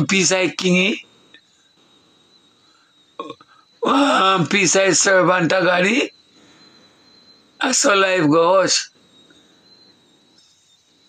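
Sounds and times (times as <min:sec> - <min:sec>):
man speaking: 0:00.0 - 0:01.0, 0:03.2 - 0:06.1, 0:07.6 - 0:08.9.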